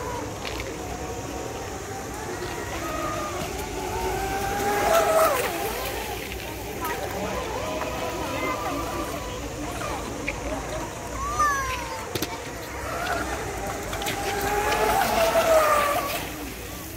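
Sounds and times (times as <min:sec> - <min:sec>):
model speedboat motors whining: 0:00.0 - 0:16.9
people talking: 0:00.0 - 0:16.9.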